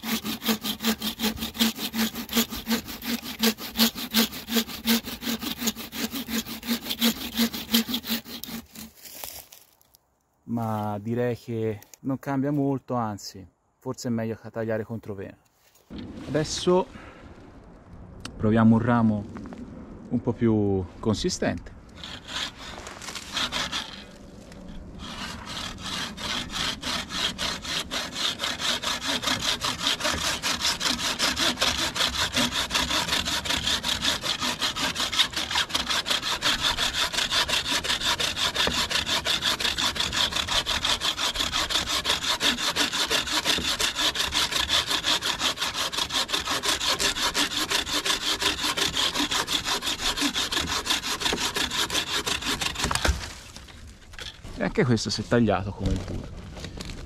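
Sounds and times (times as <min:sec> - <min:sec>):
saw cutting through branch: 0:00.0 - 0:09.7, 0:21.4 - 0:54.4.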